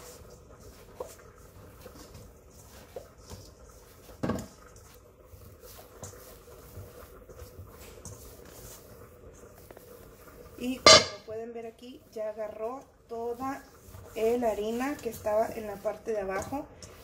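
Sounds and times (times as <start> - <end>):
dough thumping in metal bowl: 0.0 - 5.0, 10.5 - 11.4
hands kneading dough: 0.0 - 17.0.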